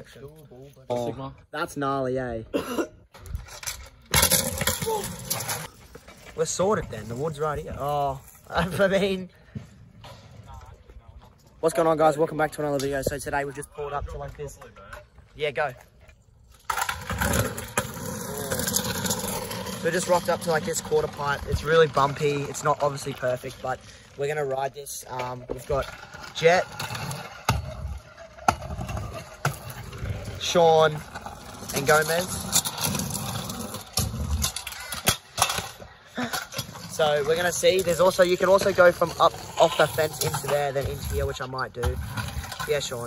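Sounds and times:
scooter wheels rumbling on pavement: 3.2 - 10.6, 16.5 - 43.0.

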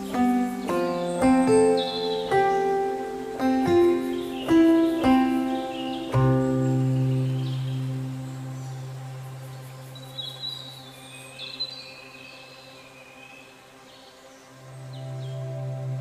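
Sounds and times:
bird chirps: 0.0 - 13.5
ambient background music: 0.0 - 16.0.

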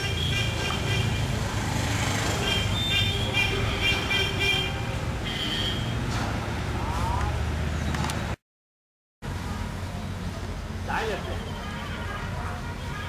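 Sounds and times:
vehicle horns tooting: 0.0 - 1.4, 2.4 - 6.0, 11.0 - 13.0
traffic engine hum: 0.0 - 8.4, 9.2 - 13.0.

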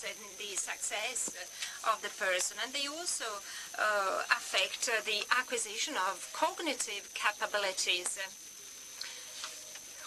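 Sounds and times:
thin steady high whine: 0.0 - 10.0.

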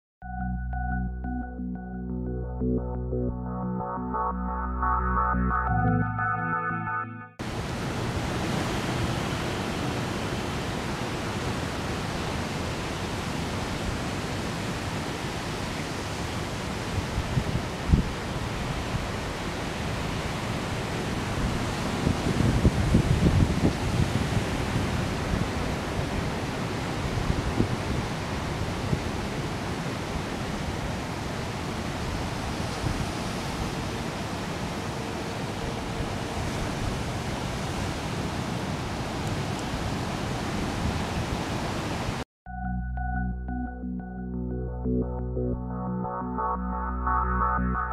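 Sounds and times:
ocean surf breaking: 7.4 - 42.2.

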